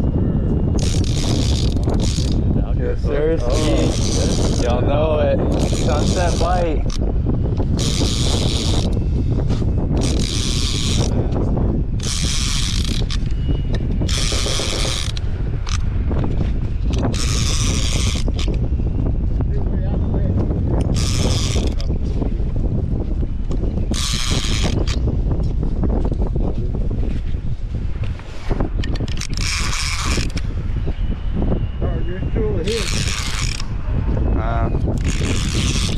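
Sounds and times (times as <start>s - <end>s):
wind rumble on microphone: 0.0s - 35.9s
fishing reel ratcheting: 0.8s - 2.4s, 3.4s - 4.8s, 5.5s - 9.0s, 9.9s - 11.2s, 12.0s - 13.4s, 14.0s - 15.9s, 16.9s - 18.6s, 20.8s - 21.9s, 23.9s - 25.0s, 28.8s - 30.4s, 32.6s - 33.7s, 35.0s - 35.9s.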